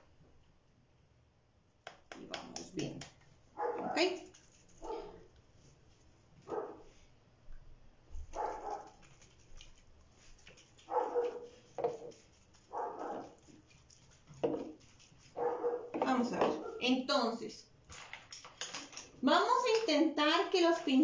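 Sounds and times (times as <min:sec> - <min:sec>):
dog barking: 0:03.6 - 0:04.2, 0:04.8 - 0:05.3, 0:06.4 - 0:06.9, 0:08.3 - 0:09.0, 0:10.9 - 0:11.5, 0:12.7 - 0:13.4, 0:15.4 - 0:16.9.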